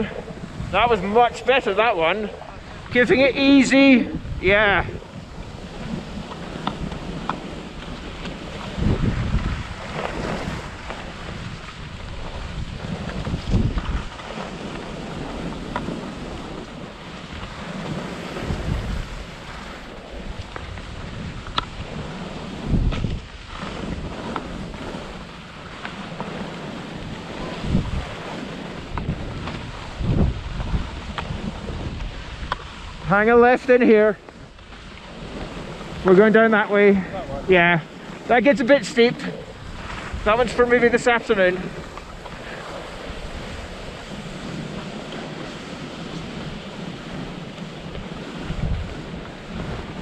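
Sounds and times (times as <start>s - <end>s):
skis sliding on packed snow: 0.0s - 50.0s
wind on microphone: 0.0s - 50.0s.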